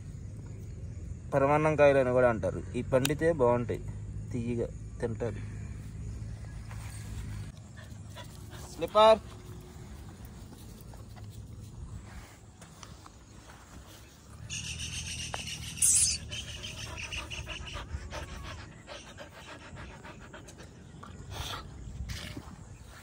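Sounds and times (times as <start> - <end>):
dog panting: 7.2 - 11.3, 15.6 - 22.1.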